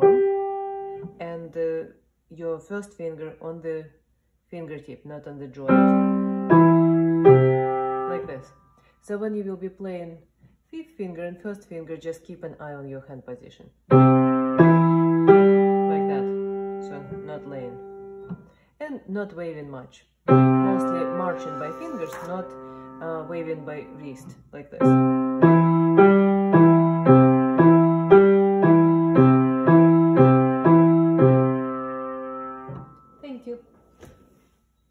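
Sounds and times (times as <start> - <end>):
piano notes rising: 0.0 - 1.2, 5.7 - 8.4, 13.9 - 18.4, 20.3 - 33.4.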